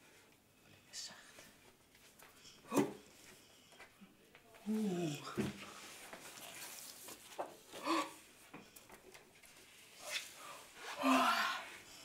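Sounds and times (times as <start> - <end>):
person yawning loudly: 11.0 - 11.7.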